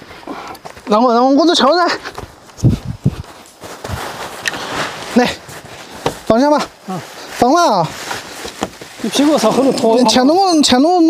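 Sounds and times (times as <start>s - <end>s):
bamboo leaves rustling: 0.1s - 10.7s.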